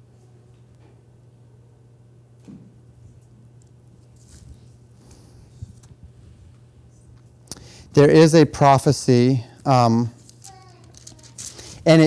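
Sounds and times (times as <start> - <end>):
steady low hum: 0.0 - 12.0
rustling at a lectern: 10.1 - 12.0.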